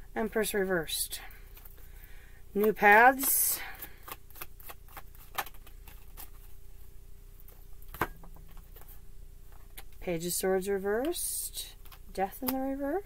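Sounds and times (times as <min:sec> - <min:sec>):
cards being shuffled: 0:02.6 - 0:06.6.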